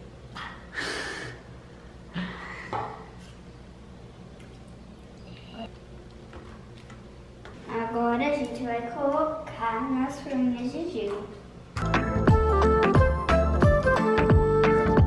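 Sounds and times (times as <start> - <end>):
steady low hum: 0.0 - 13.2
person breathing: 0.7 - 2.9.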